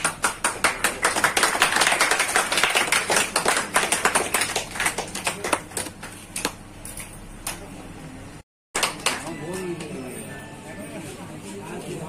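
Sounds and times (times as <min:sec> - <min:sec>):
audience clapping: 0:00.0 - 0:06.5, 0:08.8 - 0:09.3.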